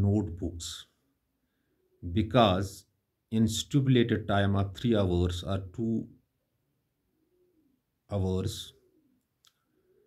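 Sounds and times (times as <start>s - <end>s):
faint bird cooing: 7.1s - 10.0s.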